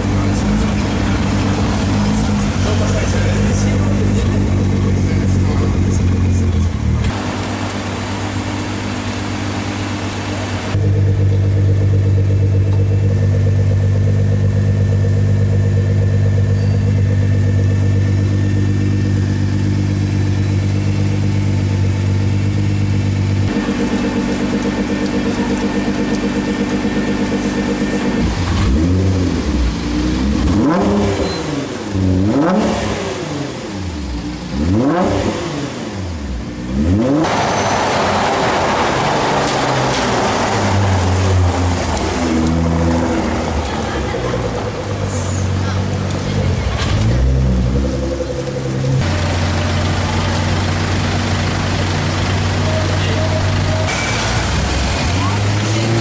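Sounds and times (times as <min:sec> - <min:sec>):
car engine idling and revving: 0:00.0 - 0:56.0.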